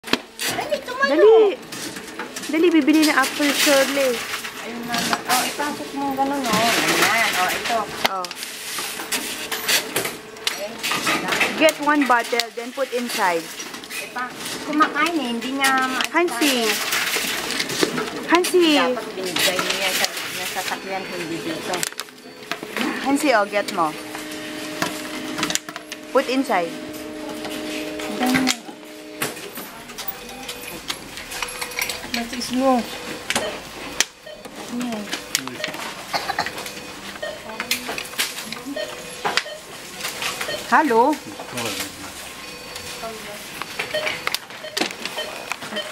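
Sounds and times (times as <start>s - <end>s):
people talking: 2.5s - 8.4s, 10.6s - 13.5s, 14.2s - 16.9s, 18.3s - 21.9s, 22.8s - 24.0s, 26.1s - 28.8s, 40.7s - 41.9s.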